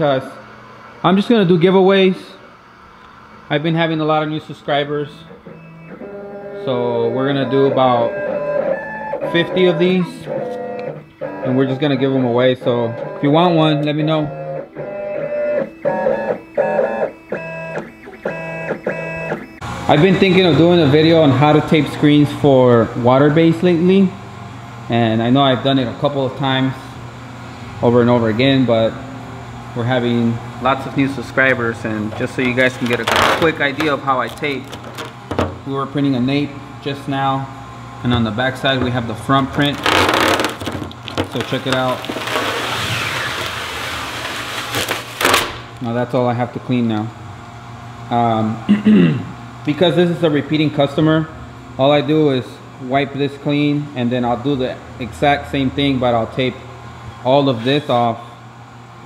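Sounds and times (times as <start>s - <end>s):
vinyl cutter motors whining: 0.0s - 48.6s
tape being peeled off: 32.2s - 35.4s, 39.6s - 45.8s.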